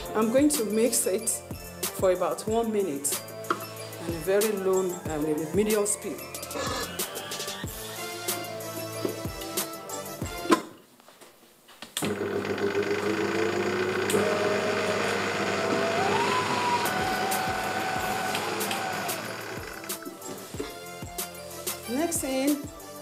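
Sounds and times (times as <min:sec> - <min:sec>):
background music with a beat: 0:00.0 - 0:10.7, 0:15.8 - 0:23.0
electric stand mixer beating: 0:12.0 - 0:20.2.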